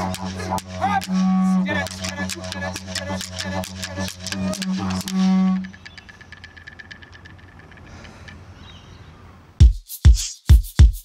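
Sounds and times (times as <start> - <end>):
didgeridoo drone: 0.0 - 8.0
fast even clicking: 1.8 - 8.4.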